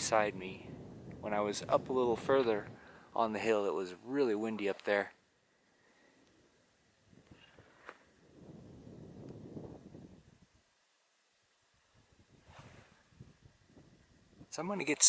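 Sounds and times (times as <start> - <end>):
faint soft rustles: 4.4 - 8.7, 11.9 - 14.2.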